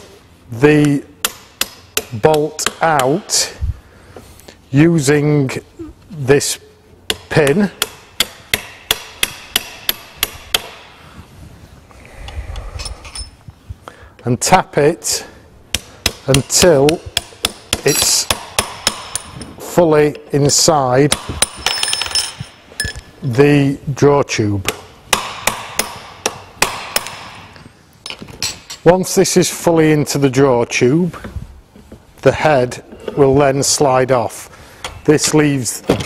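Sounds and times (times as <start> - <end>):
metal parts clinking: 12.7 - 13.4, 21.5 - 23.2.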